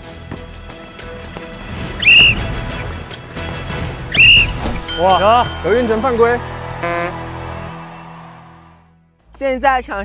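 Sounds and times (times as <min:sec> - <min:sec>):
background music: 0:00.0 - 0:10.0
referee's whistle blast: 0:02.0 - 0:02.5, 0:04.1 - 0:05.8.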